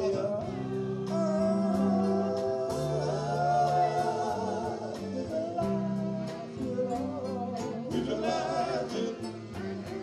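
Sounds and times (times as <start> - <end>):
live band: 0.0 - 10.0
male vocal group singing: 0.0 - 10.0
steady drum beats: 0.0 - 10.0.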